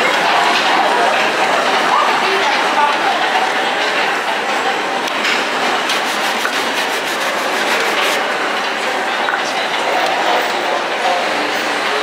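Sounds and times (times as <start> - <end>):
brush scrubbing a sneaker: 5.9 - 8.2.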